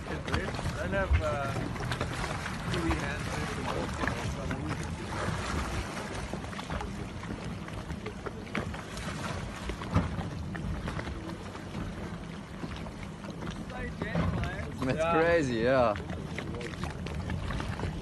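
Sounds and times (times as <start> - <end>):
water lapping and splashing: 0.0 - 18.0
wind buffeting microphone: 0.0 - 18.0.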